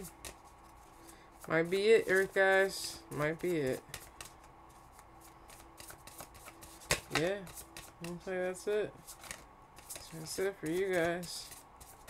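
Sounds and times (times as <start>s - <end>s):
handling card deck: 0.0s - 12.0s.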